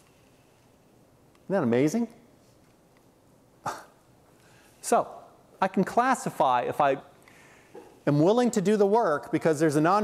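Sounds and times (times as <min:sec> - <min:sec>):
man speaking: 0:01.5 - 0:02.3, 0:04.8 - 0:07.2, 0:08.0 - 0:10.0
person coughing: 0:03.6 - 0:04.0.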